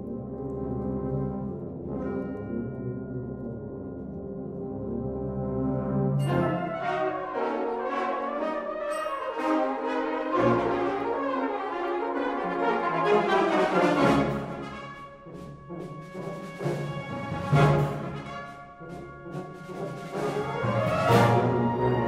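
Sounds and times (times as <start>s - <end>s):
brass band playing: 4.8s - 22.0s.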